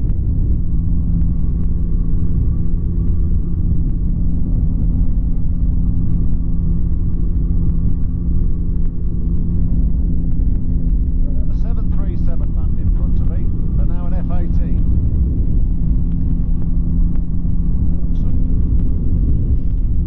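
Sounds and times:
microlight engine and propeller drone: 0.0 - 20.0.

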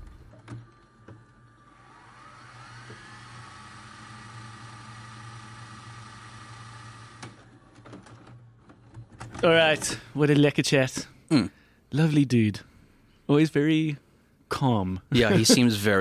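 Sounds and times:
small electric motor whirring: 1.4 - 7.4.

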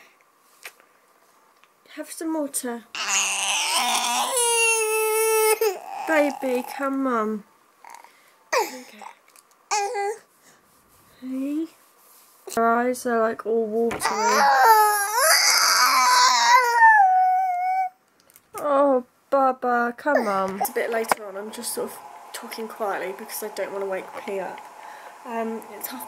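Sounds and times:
baby crying: 3.0 - 6.7, 14.0 - 18.0.

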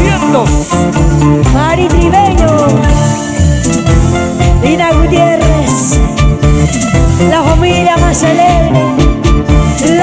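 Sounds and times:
drum kit beat: 0.0 - 10.0
keyboards: 0.0 - 10.0
plucked mandolin melody: 0.0 - 10.0.

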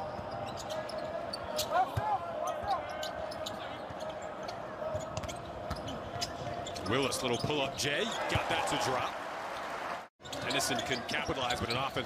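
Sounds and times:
sneaker squeaks: 0.1 - 1.8, 2.4 - 8.3.

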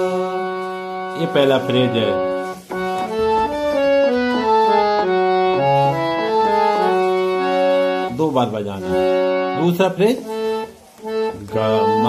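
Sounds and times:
harmonium melody: 0.0 - 12.0.

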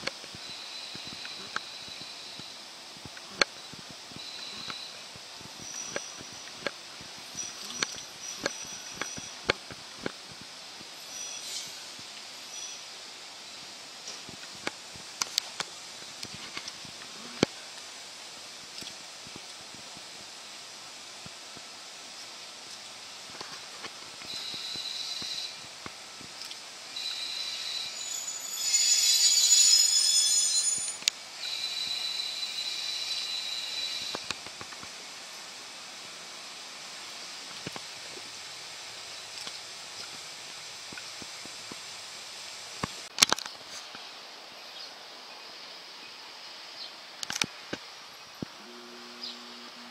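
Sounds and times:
railcar wheels squealing: 0.2 - 2.7, 4.2 - 9.6, 11.0 - 13.6, 24.2 - 25.8, 26.9 - 34.5.

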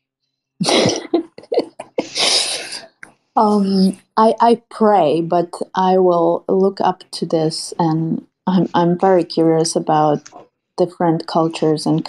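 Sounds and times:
person laughing: 0.6 - 2.9.

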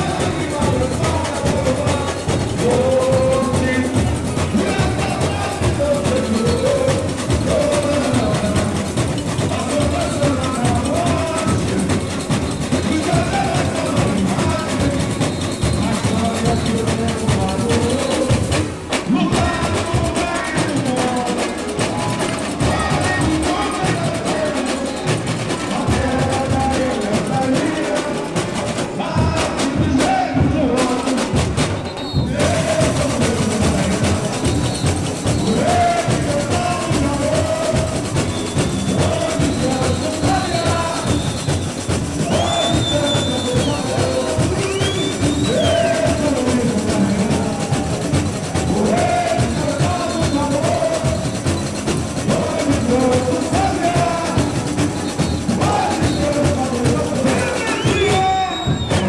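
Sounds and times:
people singing: 0.0 - 59.0
samba drums: 0.0 - 59.0.

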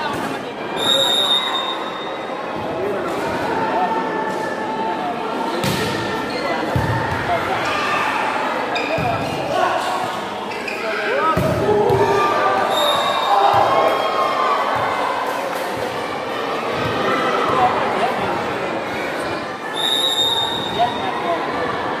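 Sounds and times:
spectators chattering and shouting: 0.0 - 22.0
shoe squeaks: 10.5 - 11.0, 19.7 - 21.0.

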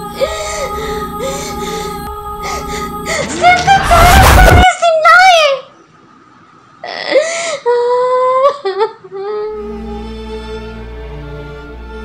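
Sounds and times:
sad background music: 0.0 - 4.6, 9.3 - 12.0.

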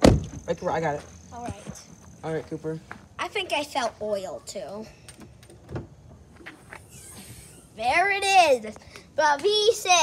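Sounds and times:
car hood thump: 0.0 - 0.4.

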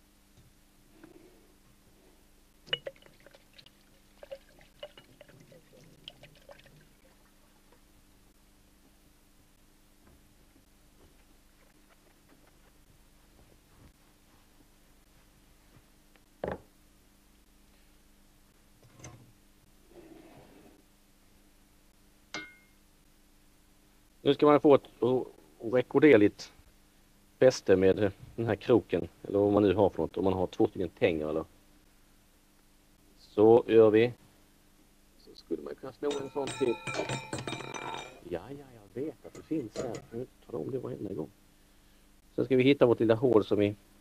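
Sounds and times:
faint steady hum: 0.0 - 44.0
wire hook clinking on steel pot: 22.3 - 22.8, 36.0 - 38.3, 39.3 - 40.2.

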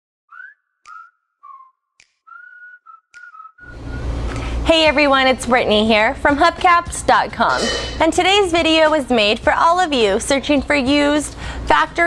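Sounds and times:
person whistling a tune: 0.3 - 4.1.

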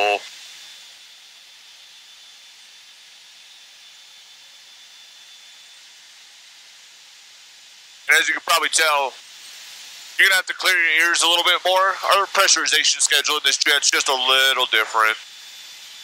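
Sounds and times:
intercom hiss: 0.0 - 0.2, 8.1 - 9.2, 10.2 - 15.2
person speaking: 0.0 - 0.2, 8.1 - 9.1, 10.2 - 15.2.

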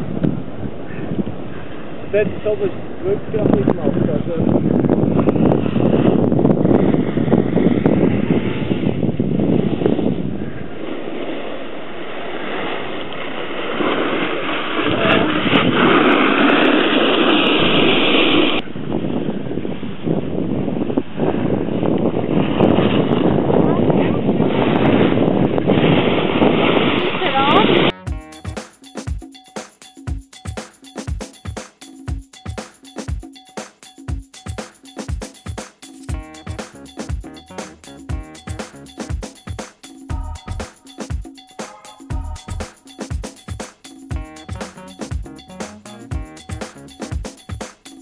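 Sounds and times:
wind buffeting microphone: 0.0 - 27.9
snowboards scraping over snow: 5.3 - 18.6, 20.9 - 27.9.

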